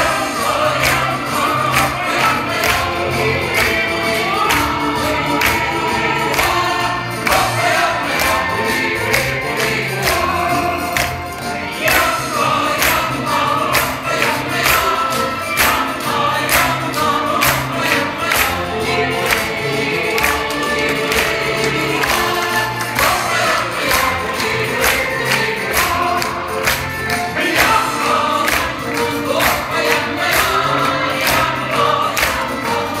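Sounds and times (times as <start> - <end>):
men and women singing chorus: 0.0 - 33.0
tambourines and percussion: 0.0 - 33.0.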